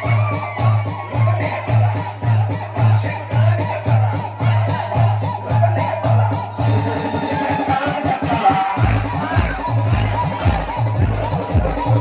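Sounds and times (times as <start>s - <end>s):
dance music with pounding bass: 0.0s - 12.0s.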